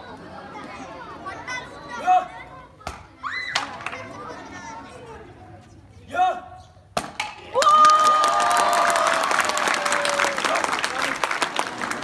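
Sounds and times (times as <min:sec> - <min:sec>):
children chattering: 0:00.0 - 0:06.1.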